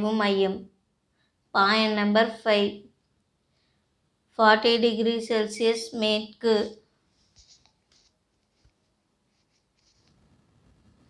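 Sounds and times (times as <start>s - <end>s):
pen scratching on paper: 7.2s - 11.0s.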